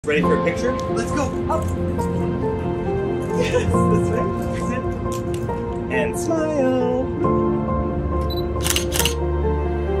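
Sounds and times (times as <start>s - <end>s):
background music: 0.0s - 10.0s
camera shutter clicks: 8.4s - 9.2s.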